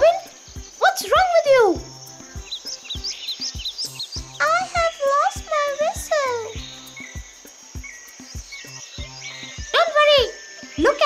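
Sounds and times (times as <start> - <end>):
high cricket-like chirps: 0.0 - 11.0
soft music with low beat: 0.0 - 11.0.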